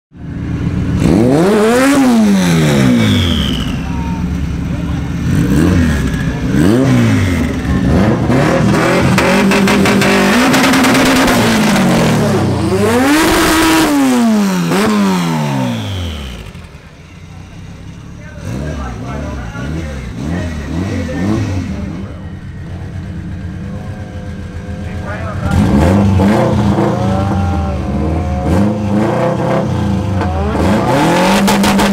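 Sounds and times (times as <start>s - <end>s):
race car engines revving: 0.2s - 31.9s.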